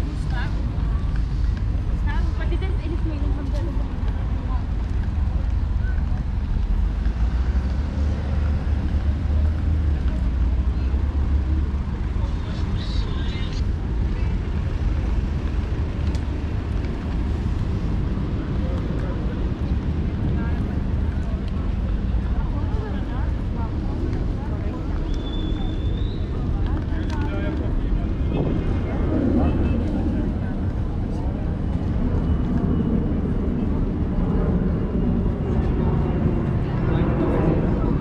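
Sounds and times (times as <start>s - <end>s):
faint voices of passers-by: 0.0s - 38.0s
traffic rumble: 0.0s - 38.0s
wind on microphone: 25.6s - 38.0s.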